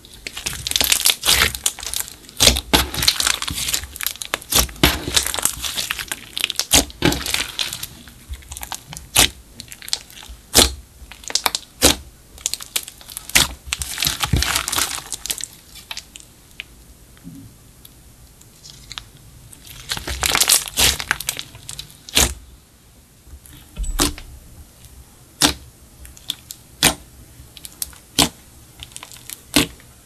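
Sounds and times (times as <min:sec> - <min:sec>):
slime crackling and popping: 0:00.0 - 0:16.7, 0:18.5 - 0:22.4, 0:25.4 - 0:29.9.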